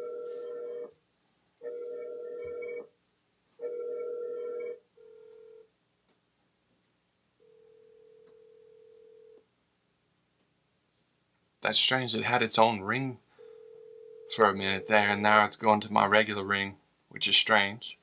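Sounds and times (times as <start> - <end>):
speaker ring tones: 0.0 - 0.9, 1.6 - 2.9
phone ringback tone: 0.0 - 1.0, 1.6 - 2.9, 3.6 - 5.7, 7.4 - 9.4, 13.4 - 15.1.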